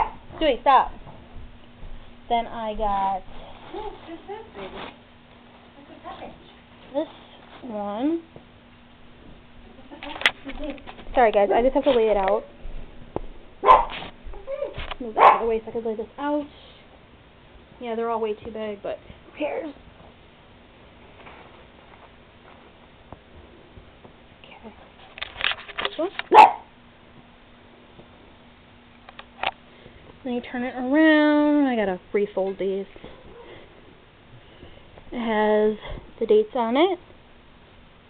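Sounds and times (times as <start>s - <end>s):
dog barking: 0.0s - 0.2s, 13.6s - 15.5s, 26.3s - 26.7s
rustling and handling noises: 0.0s - 8.5s, 9.1s - 16.6s, 18.4s - 26.4s
dog yipping: 13.6s - 15.5s, 26.3s - 26.7s.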